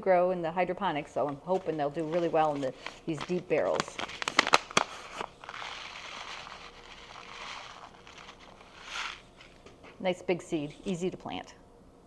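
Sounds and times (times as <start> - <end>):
seeds pouring from paper packet: 5.4 - 9.2.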